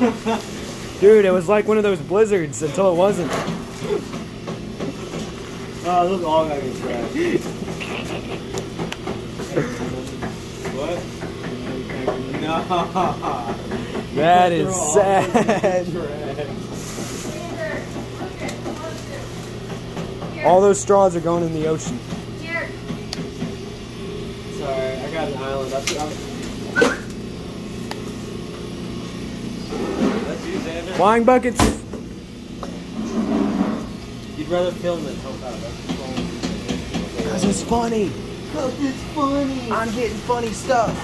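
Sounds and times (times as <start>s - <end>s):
low mechanical hum: 0.0s - 41.0s.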